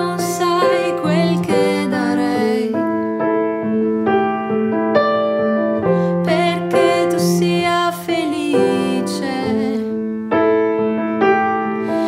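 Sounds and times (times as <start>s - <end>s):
slow piano chords: 0.0s - 12.0s.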